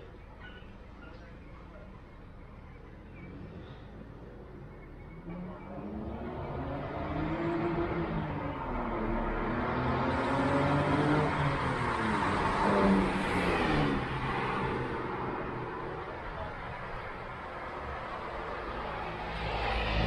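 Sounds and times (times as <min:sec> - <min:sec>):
vehicle engine passing by: 0:05.1 - 0:17.1, 0:18.2 - 0:20.0.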